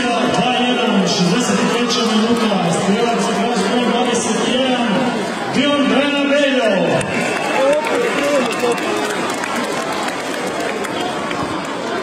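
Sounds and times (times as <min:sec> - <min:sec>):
stadium crowd voices: 0:00.0 - 0:12.0.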